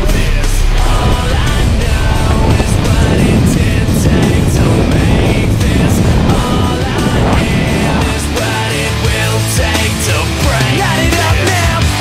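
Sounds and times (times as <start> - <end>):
rock music: 0.0 - 12.0
steady drum beat: 0.0 - 12.0.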